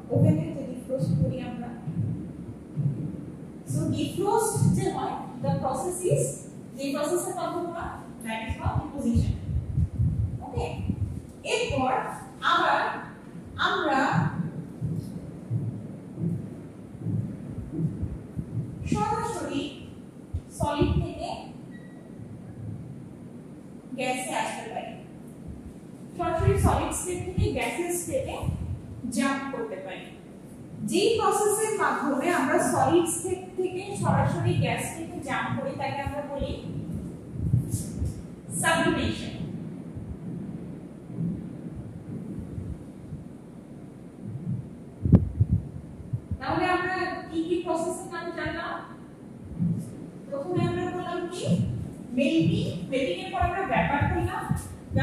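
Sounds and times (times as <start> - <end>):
low rumbling background noise: 0.0 - 55.0.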